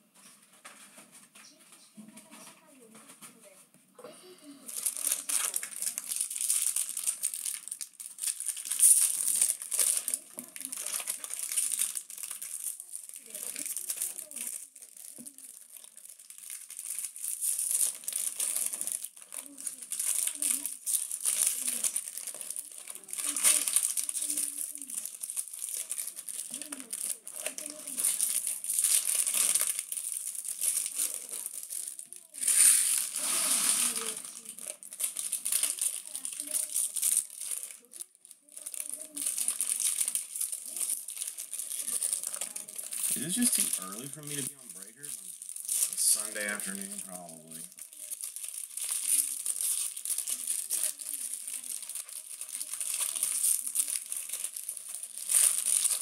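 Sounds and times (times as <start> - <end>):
foil wrappers tearing and crinkling: 4.6 - 56.0.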